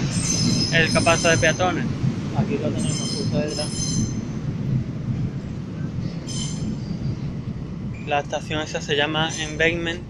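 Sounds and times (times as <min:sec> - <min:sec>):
high-pitched wheel squeal: 0:00.0 - 0:01.8, 0:02.6 - 0:04.4, 0:06.1 - 0:07.3, 0:09.2 - 0:09.7
train rumbling on rails: 0:00.0 - 0:10.0.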